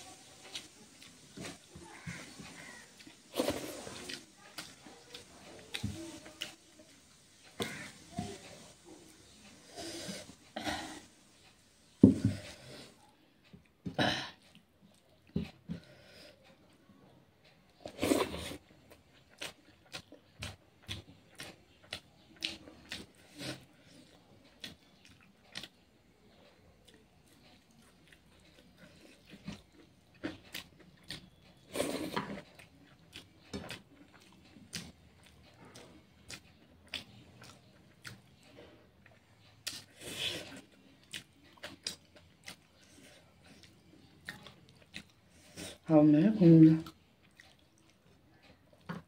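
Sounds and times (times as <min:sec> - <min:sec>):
person chewing and smacking: 0:00.2 - 0:10.4, 0:17.7 - 0:45.8, 0:46.8 - 0:49.0.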